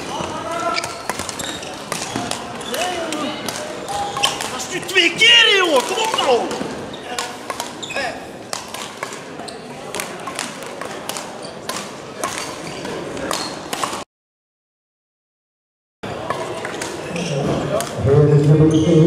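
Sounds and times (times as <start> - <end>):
racket hitting shuttlecock: 0.0 - 4.6, 5.6 - 7.8, 8.5 - 14.0
shoes squeaking on floor: 0.0 - 8.4, 9.4 - 9.9, 11.3 - 14.0, 18.5 - 19.0.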